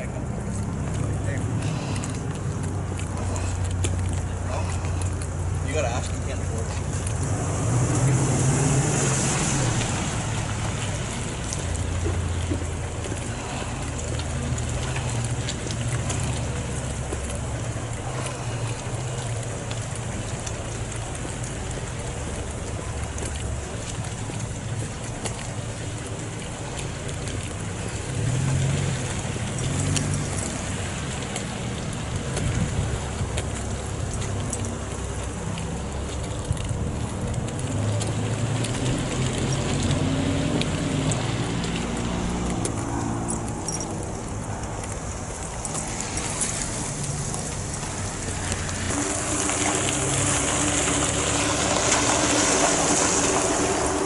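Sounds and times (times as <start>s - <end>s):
vehicle noise: 0.0s - 54.0s
car engine running: 40.7s - 54.0s.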